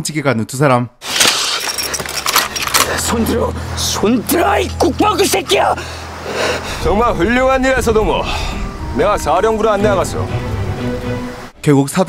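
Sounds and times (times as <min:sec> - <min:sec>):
rifle and gear rattling: 0:01.1 - 0:03.2.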